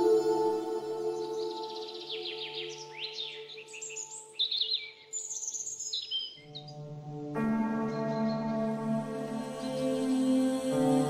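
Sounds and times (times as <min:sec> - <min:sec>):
ambient music tones: 0:00.0 - 0:04.4, 0:06.4 - 0:11.0
birds singing: 0:00.0 - 0:10.8.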